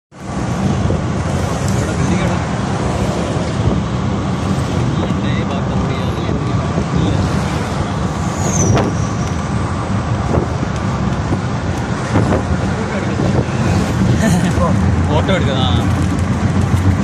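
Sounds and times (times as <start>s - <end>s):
road noise: 0.1s - 17.0s
vehicle engine rumble: 0.2s - 17.0s.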